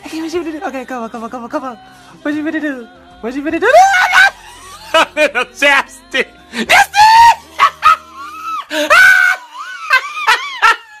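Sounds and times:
man shrieking laughter: 3.8s - 5.5s, 6.7s - 11.0s.

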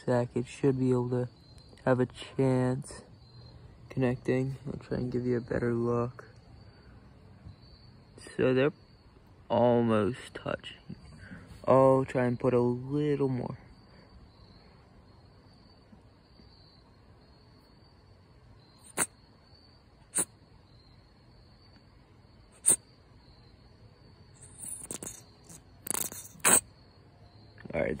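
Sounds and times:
gel squeezing and squirting: 18.8s - 19.1s, 22.6s - 22.8s, 24.4s - 26.7s.

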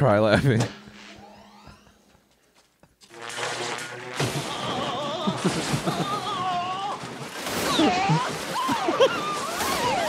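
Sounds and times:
movie soundtrack music: 0.0s - 7.6s.

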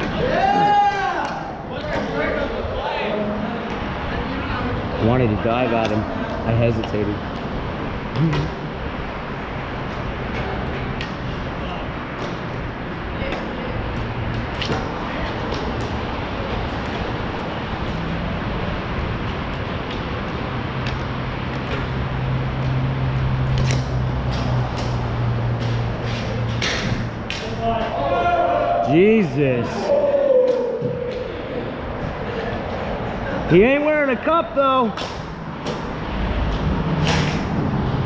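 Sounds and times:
steady rushing noise: 0.0s - 38.0s.

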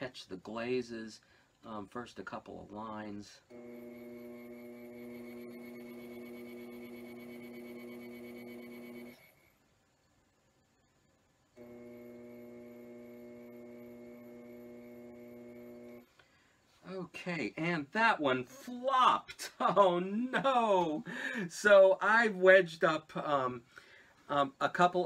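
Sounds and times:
potter's wheel motor humming: 3.5s - 9.4s, 11.6s - 16.0s.

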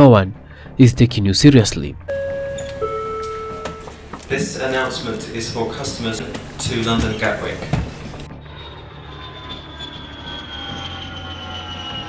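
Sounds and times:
jet engines whining: 2.1s - 12.0s
low engine rumble: 2.1s - 12.0s.

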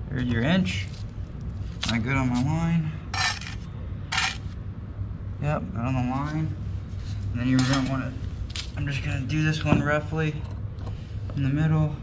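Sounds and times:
metallic trowel scrapes: 3.2s - 4.5s.

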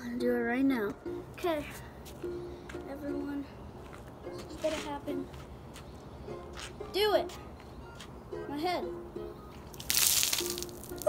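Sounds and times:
background music: 0.0s - 11.0s
water splashing on concrete: 9.7s - 11.0s.

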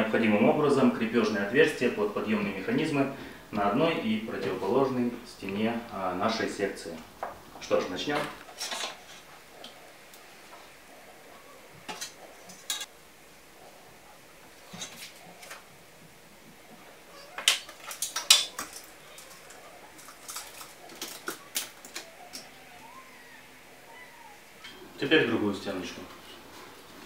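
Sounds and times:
hand tools clicking and knocking: 11.9s - 12.9s, 17.4s - 22.5s.

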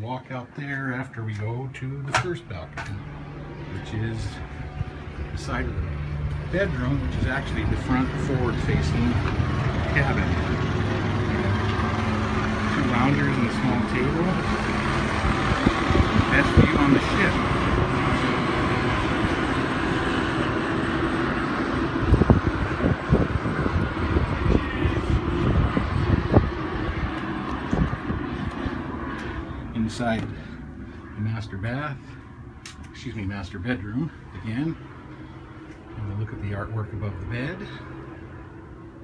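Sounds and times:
low hum: 0.0s - 39.0s
wind rushing: 21.6s - 29.2s.

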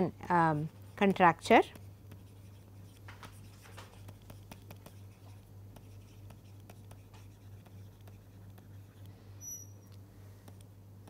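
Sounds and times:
steady low hum: 0.0s - 11.0s
stylus scratching on screen: 0.3s - 9.8s.

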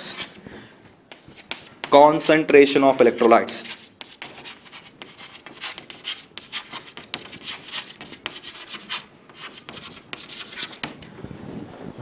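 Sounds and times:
chalk scratching on chalkboard: 0.0s - 0.4s, 1.1s - 11.0s.

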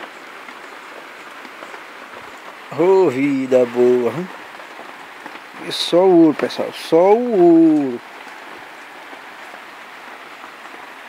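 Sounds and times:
rain falling on shack: 0.0s - 11.0s.

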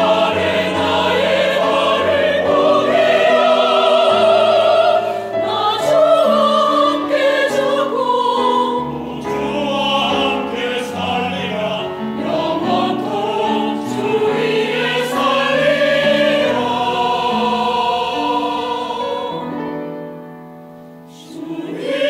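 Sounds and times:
church choir singing: 0.0s - 22.0s.

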